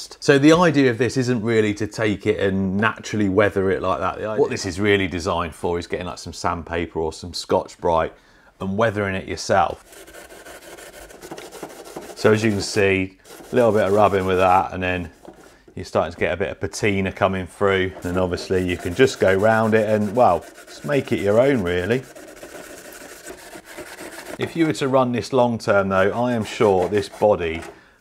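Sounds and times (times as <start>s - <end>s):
abrasive pad scrubbing paint: 9.7s - 15.6s, 17.1s - 24.8s, 25.8s - 27.8s.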